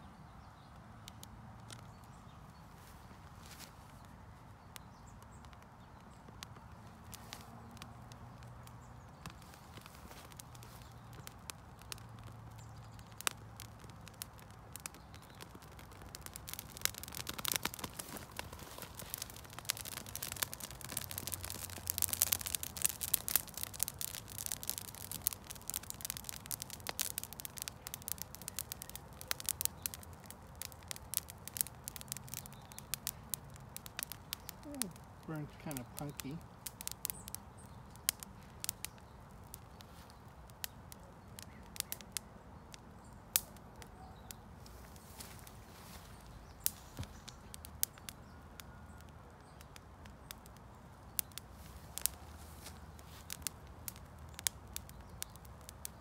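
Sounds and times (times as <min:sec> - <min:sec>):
dry straw burning and crackling: 0:00.0 - 0:56.0.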